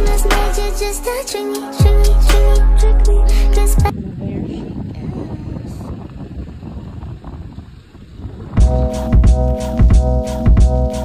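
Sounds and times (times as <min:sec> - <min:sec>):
music with heavy beat: 0:00.0 - 0:03.9, 0:08.6 - 0:11.0
wind buffeting microphone: 0:03.8 - 0:10.8.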